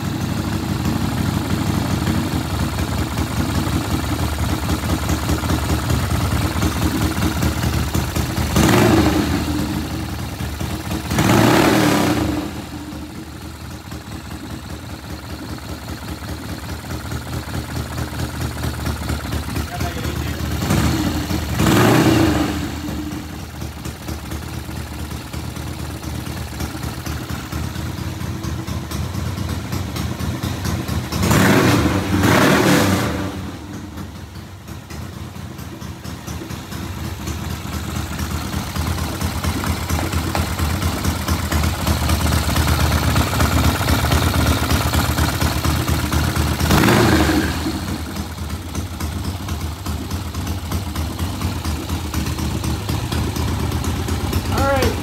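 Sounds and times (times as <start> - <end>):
motorcycle engine idling: 0.0 - 55.0.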